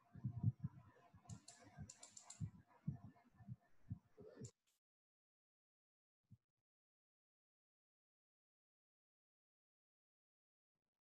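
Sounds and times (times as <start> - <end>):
low dull bumps: 0.1 - 4.1
computer mouse and keyboard clicks: 1.3 - 2.5.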